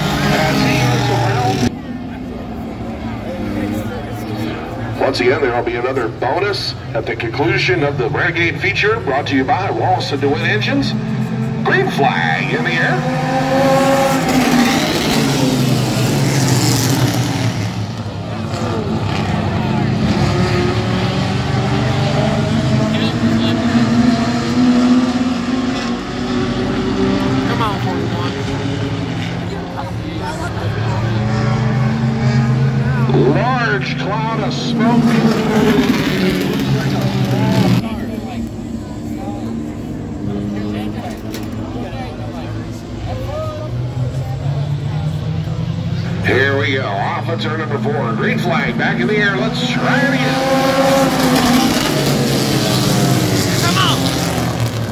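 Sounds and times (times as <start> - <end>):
race car engines revving and passing: 0.0 - 54.9.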